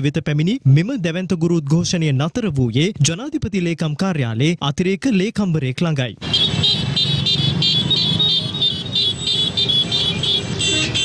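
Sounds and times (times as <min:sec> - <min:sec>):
vehicle horns beeping: 0:06.2 - 0:11.0.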